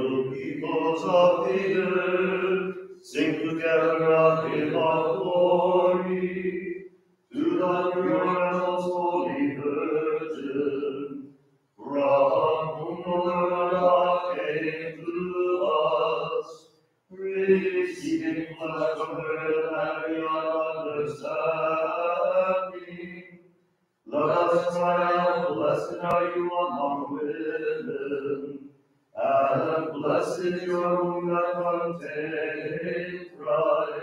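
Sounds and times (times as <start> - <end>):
person chanting: 0.0 - 6.7, 7.3 - 11.2, 11.8 - 23.2, 24.1 - 28.6, 29.2 - 34.0.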